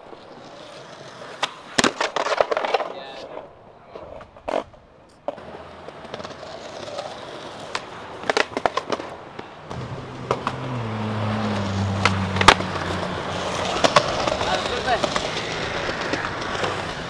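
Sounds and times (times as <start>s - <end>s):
skateboard clacks: 0.0s - 17.0s
skateboard cracking: 0.0s - 17.0s
skateboard wheels rolling: 0.0s - 17.0s.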